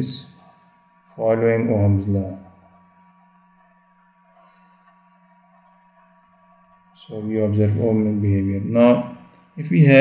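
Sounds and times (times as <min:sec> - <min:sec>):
faint high whine: 0:00.0 - 0:10.0
faint steady hum: 0:00.0 - 0:10.0.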